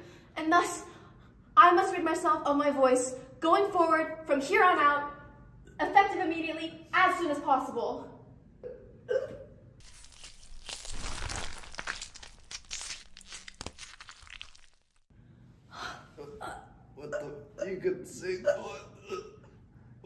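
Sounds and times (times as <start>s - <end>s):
crunching tearing crackles: 9.8s - 15.1s.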